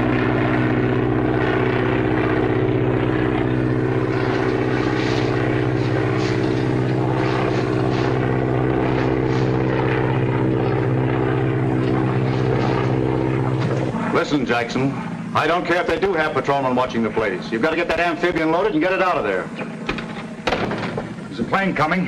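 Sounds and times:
propeller airplane engine droning: 0.0 - 22.0.

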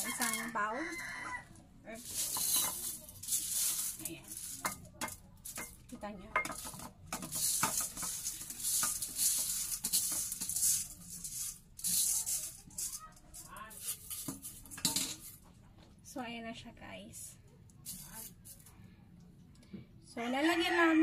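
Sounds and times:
beans rattling in metal colander: 0.0 - 0.7, 1.9 - 15.4.

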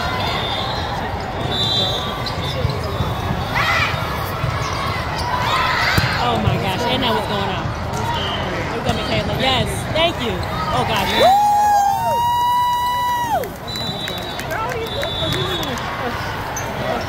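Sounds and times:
volleyball hits and bounces: 5.8 - 6.6.

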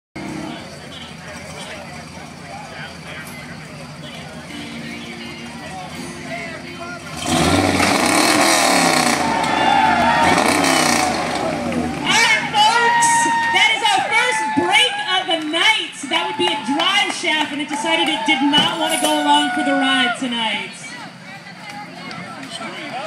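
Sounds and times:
truck engine revving: 0.2 - 12.9
crowd shouting: 8.8 - 23.0.

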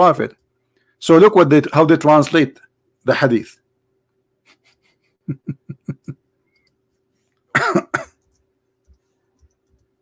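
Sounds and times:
faint steady hum: 0.0 - 10.0
man coughing: 7.5 - 8.2.

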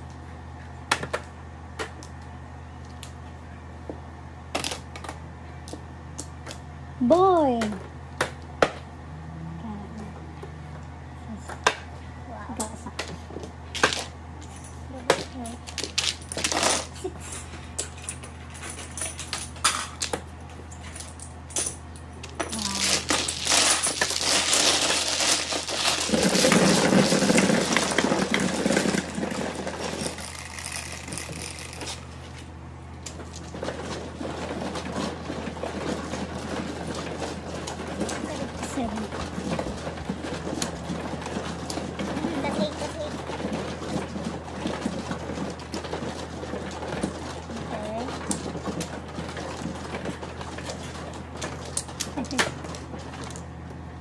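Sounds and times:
mahjong machine shuffling tiles: 15.3 - 20.2, 22.2 - 32.5, 33.1 - 53.6.

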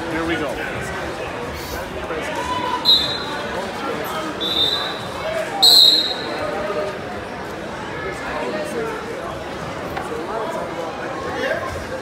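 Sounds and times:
crowd chatter echoing: 0.0 - 12.0
referee's whistle blasts: 2.8 - 3.4, 4.4 - 6.4.

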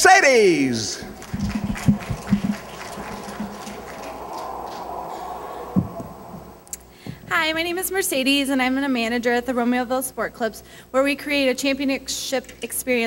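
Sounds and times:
audience applause: 1.0 - 6.6
low thumps: 1.0 - 7.4.

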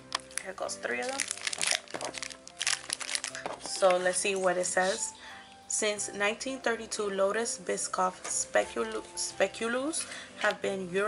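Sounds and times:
plastic wrappers crinkling: 0.0 - 5.1
background music: 0.0 - 11.0.

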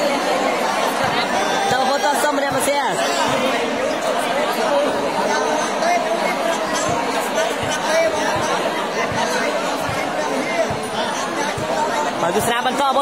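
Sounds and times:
crowd chattering in echoing hall: 0.0 - 13.0.

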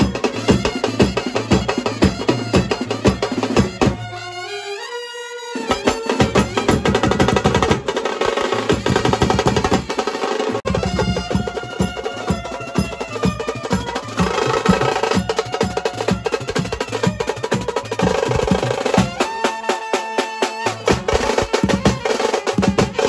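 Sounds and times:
hand drums and snare drums beat: 0.0 - 4.1, 5.7 - 23.0
saxophone melody: 0.0 - 23.0.

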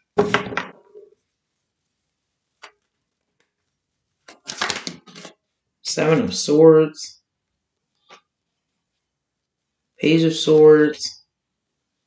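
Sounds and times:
cards being shuffled: 4.2 - 5.3.

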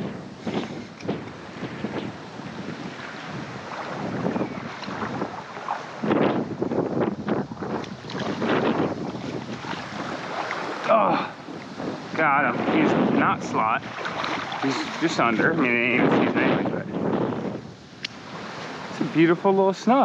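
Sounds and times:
small waves washing: 0.0 - 20.0
wind buffeting microphone: 0.0 - 20.0.

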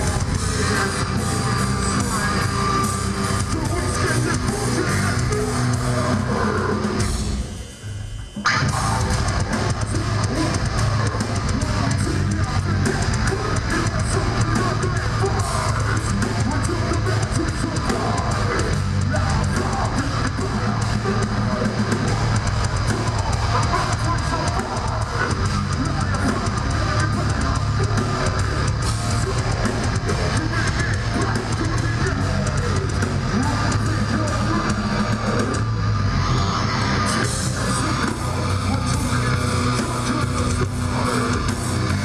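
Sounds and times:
bass guitar: 0.0 - 7.6, 8.2 - 42.0
distorted electric guitars: 0.0 - 42.0
fast drum and cymbal hits: 0.0 - 42.0
live metal band playing: 0.0 - 42.0.

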